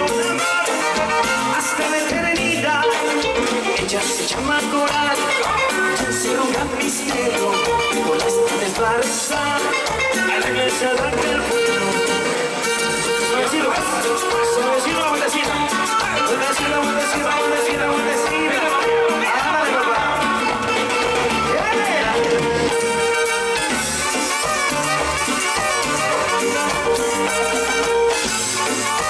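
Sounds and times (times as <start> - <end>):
latin dance band playing: 0.0 - 29.0.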